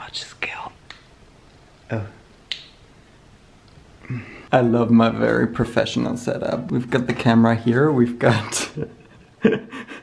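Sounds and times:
sharp snap-like click: 0:02.5 - 0:02.8.

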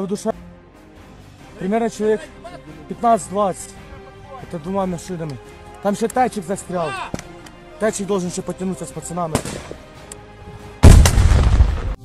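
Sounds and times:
loud explosion with deep rumble: 0:10.8 - 0:12.0.

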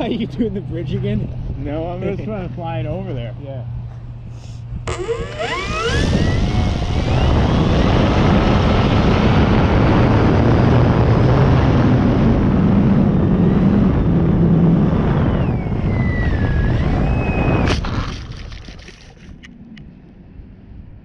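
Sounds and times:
electric motor and propeller whine: 0:00.0 - 0:21.0
heavy wind rush: 0:00.0 - 0:21.0
plane striking ground: 0:00.0 - 0:21.0.

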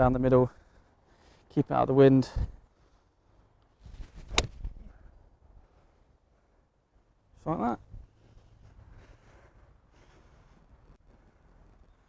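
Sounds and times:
golf club striking ball: 0:04.3 - 0:04.7.

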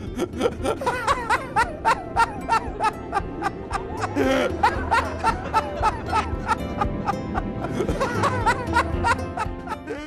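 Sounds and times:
people laughing hard: 0:00.0 - 0:10.0.

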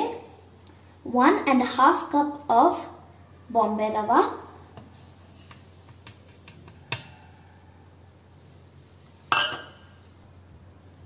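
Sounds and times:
steel bowl and jar clinking: 0:09.3 - 0:10.0.

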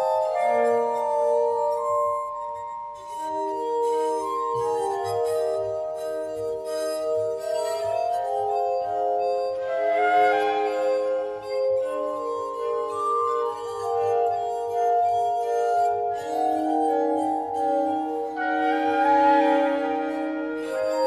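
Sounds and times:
glass harmonica chords: 0:00.0 - 0:21.0.

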